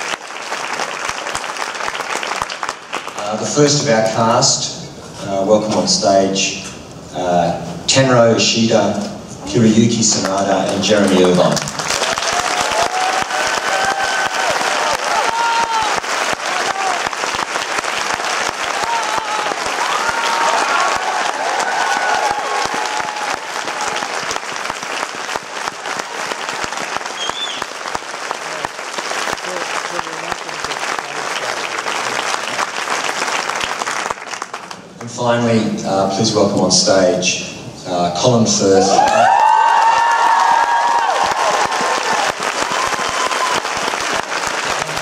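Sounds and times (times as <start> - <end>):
audience applauding: 0.0 - 3.7, 10.2 - 35.0, 38.9 - 45.0
cheers and whoops: 12.0 - 17.2, 18.6 - 24.4, 38.9 - 44.2.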